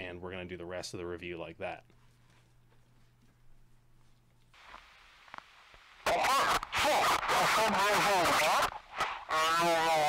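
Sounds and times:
faint low hum: 0.0 - 10.0
faint hiss: 4.5 - 10.0.

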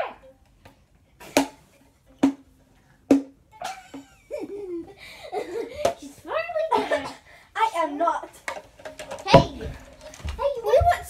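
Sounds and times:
girl speaking: 6.0 - 8.4, 9.3 - 11.0.

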